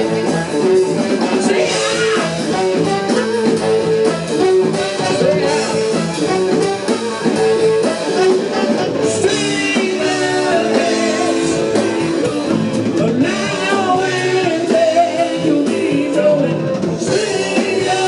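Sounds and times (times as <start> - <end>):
electric guitar: 0.0 - 18.0.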